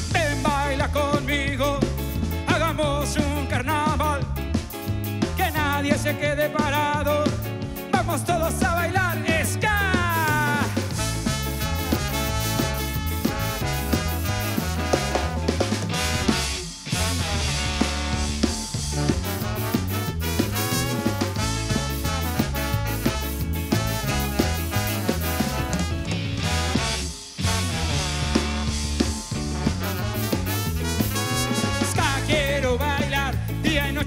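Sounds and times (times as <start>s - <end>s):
electric bass low notes: 0.0s - 34.0s
guitar: 0.0s - 34.0s
ska band playing: 0.0s - 34.0s
drum kit hits: 6.7s - 33.8s.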